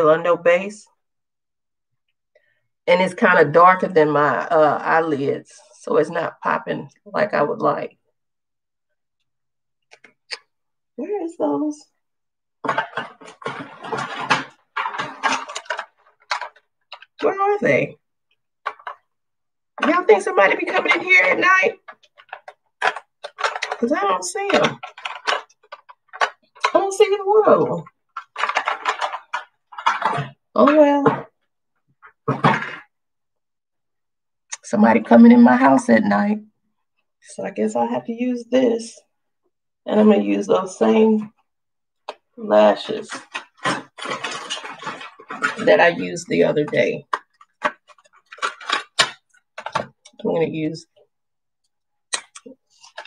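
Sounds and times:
woman speaking: 0.0s - 1.0s, 2.8s - 8.0s, 11.0s - 12.0s, 17.1s - 18.0s, 19.8s - 21.9s, 22.9s - 24.9s, 26.6s - 27.9s, 30.1s - 31.3s, 34.5s - 36.5s, 37.2s - 39.1s, 39.8s - 41.4s, 42.4s - 43.4s, 44.4s - 47.2s, 50.1s - 51.0s
makeup items clicking on a table: 20.8s - 23.9s, 24.5s - 26.8s, 47.1s - 50.2s.

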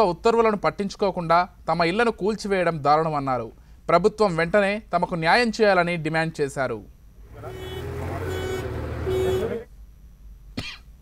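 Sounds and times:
vehicle engine running: 7.2s - 9.6s.

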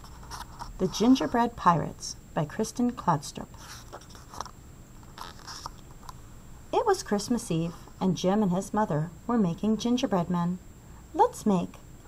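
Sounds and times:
book page turning: 3.6s - 6.0s.

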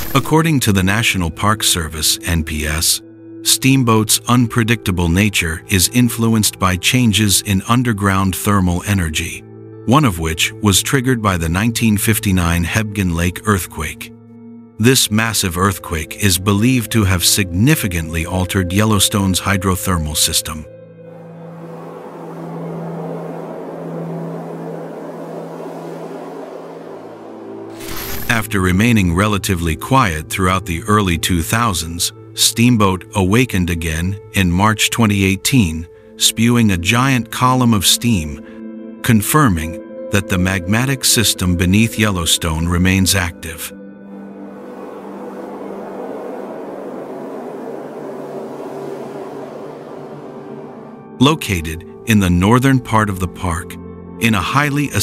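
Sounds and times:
low music drone: 0.0s - 55.0s
geyser roaring steam and water: 45.0s - 50.8s.

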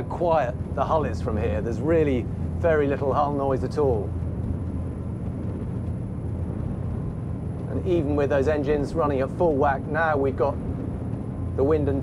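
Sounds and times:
muted diesel engine drone: 0.0s - 12.0s.

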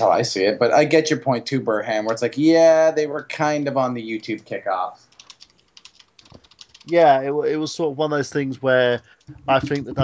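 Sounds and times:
person talking: 0.0s - 5.0s, 6.8s - 10.0s.

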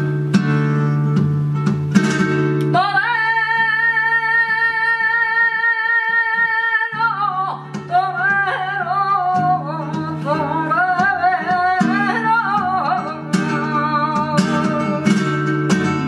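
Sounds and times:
flamenco guitar chords: 0.0s - 16.0s
woman singing: 2.6s - 16.0s.

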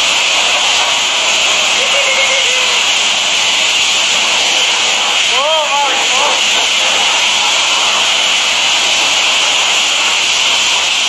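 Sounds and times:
high-pressure water jet hissing: 0.0s - 11.0s.

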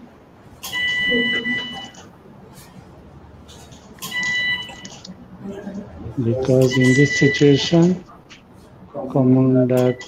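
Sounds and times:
steady high beep: 0.7s - 2.0s, 6.6s - 7.8s, 9.8s - 10.0s.

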